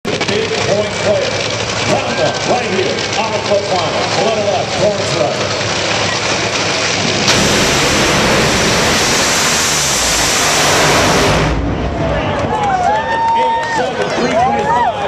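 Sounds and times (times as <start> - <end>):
dragster engines roaring: 0.0 - 15.0
crowd noise: 0.1 - 15.0.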